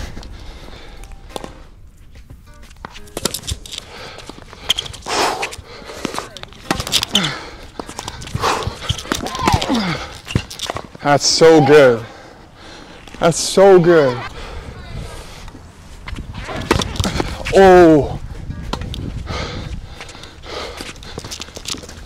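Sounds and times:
tennis racket strikes: 2.7 - 3.8, 6.6 - 7.2.

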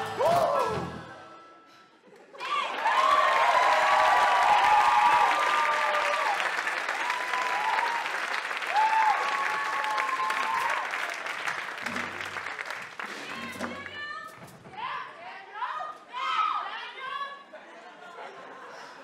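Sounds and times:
people whooping: 2.4 - 11.2
audience applauding: 2.4 - 14.0.

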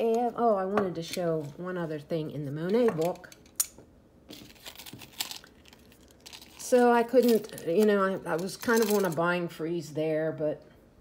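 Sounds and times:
objects being handled: 2.6 - 9.2.

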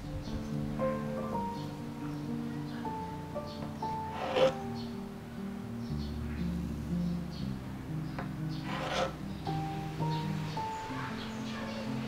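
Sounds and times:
soft background music: 0.0 - 12.0
knife sawing through cake crust: 4.1 - 4.6, 8.7 - 9.2.

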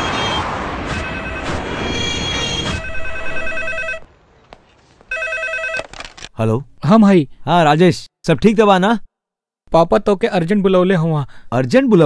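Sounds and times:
desk telephone warbling ring: 2.8 - 4.1, 5.1 - 5.8.

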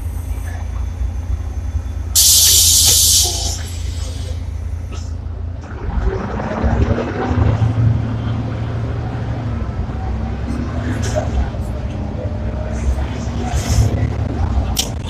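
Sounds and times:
diesel engine rumble: 0.0 - 15.0
loud air brake hiss: 2.2 - 5.0.

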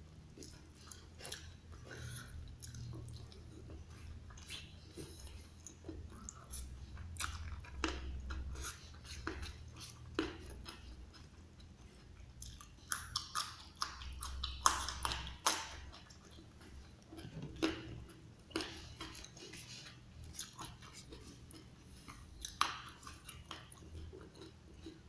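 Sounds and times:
person chewing wetly: 0.3 - 25.0
berries crunching: 0.4 - 25.0.

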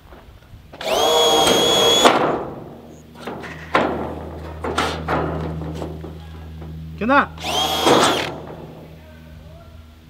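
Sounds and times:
low steady hum: 0.0 - 10.0
cordless drill whine: 0.8 - 2.2, 7.4 - 8.4.

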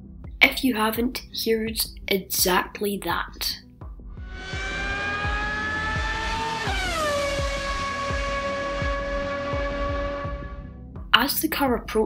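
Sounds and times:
racing car engine passing: 4.2 - 10.8.

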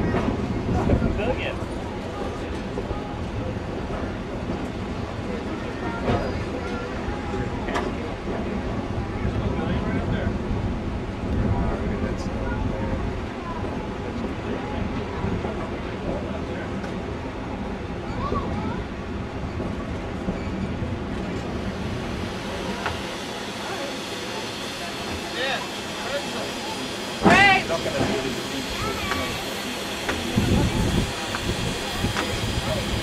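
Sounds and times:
faint voices: 0.0 - 33.0
steam train rumbling: 0.0 - 33.0.

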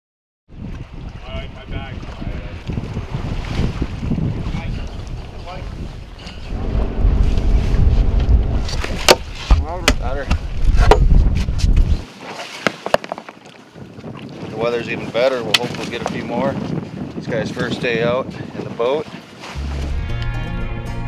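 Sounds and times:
wind rumble on microphone: 0.5 - 12.1, 13.7 - 20.0.

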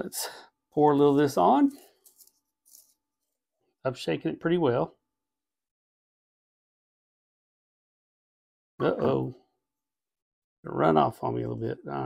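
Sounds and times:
man speaking: 0.0 - 1.9, 3.9 - 4.9, 8.8 - 9.4, 10.7 - 12.0.

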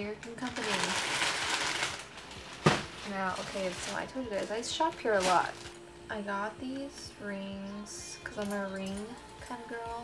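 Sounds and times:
rustling and handling noise: 0.2 - 5.9.

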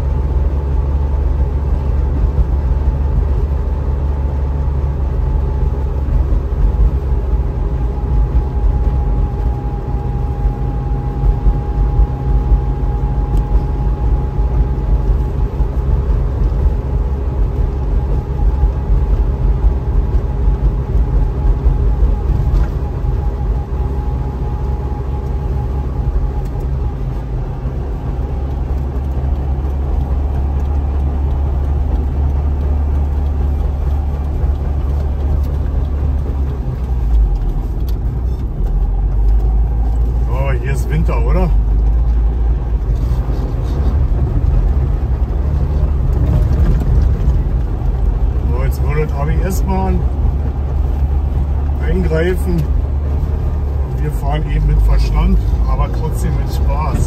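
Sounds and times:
road noise: 0.0 - 57.0
two-stroke car engine running: 0.0 - 57.0.

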